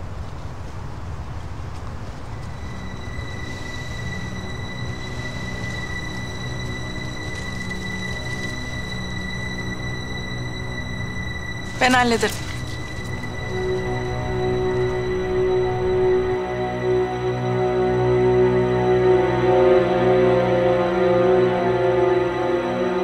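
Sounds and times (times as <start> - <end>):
low drone: 2.4 - 23.0.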